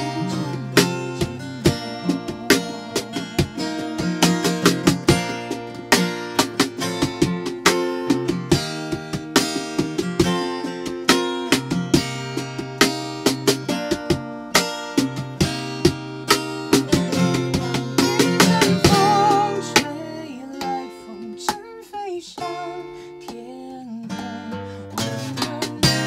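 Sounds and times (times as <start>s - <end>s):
acoustic guitar strumming: 0.0s - 26.0s.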